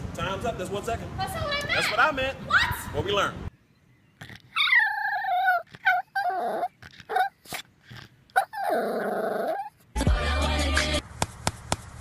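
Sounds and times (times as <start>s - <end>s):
dog giving high wavering cries: 4.2s - 7.5s, 8.4s - 9.8s.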